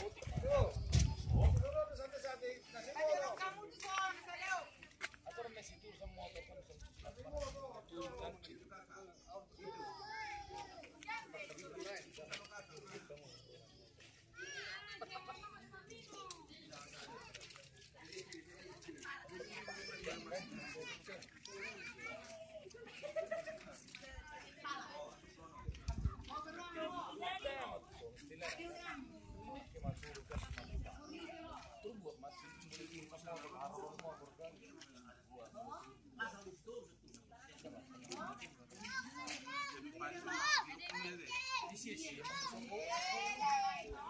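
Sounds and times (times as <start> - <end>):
faint chatter of people: 0.0 - 44.0.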